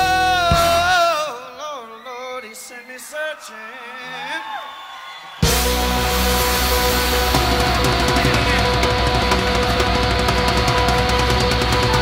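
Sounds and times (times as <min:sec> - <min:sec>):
drums with cymbal beat: 0:00.0 - 0:01.0, 0:05.4 - 0:12.0
electric guitars: 0:05.4 - 0:12.0.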